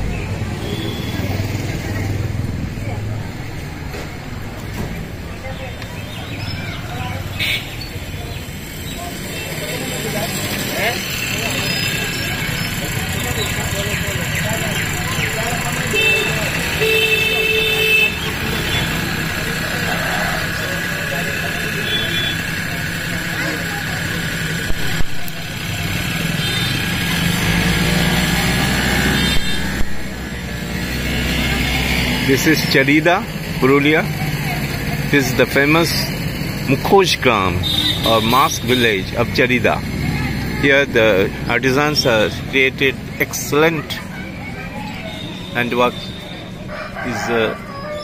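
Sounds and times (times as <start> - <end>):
indistinct voices: 0.0 - 48.0
motor vehicle noise: 0.0 - 48.0.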